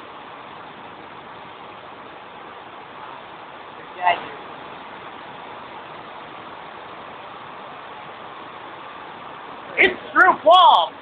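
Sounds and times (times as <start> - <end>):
cooling fans whirring: 0.0 - 11.0.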